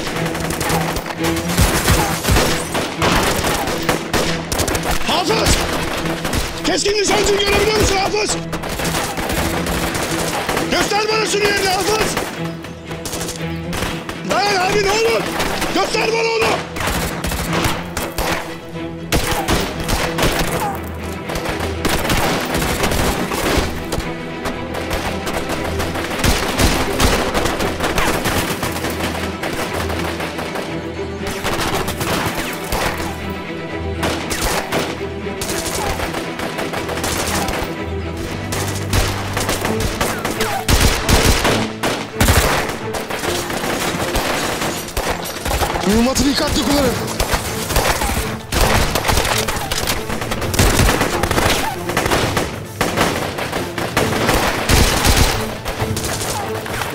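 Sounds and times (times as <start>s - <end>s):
automatic rifle fire: 47.2s - 56.4s.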